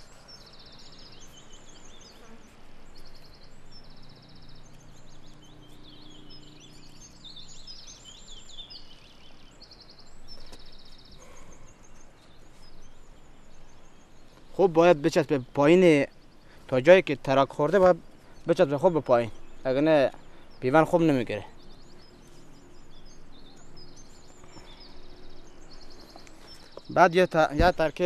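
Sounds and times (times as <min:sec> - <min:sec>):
songbirds trilling and chirping: 0:00.0 - 0:28.0.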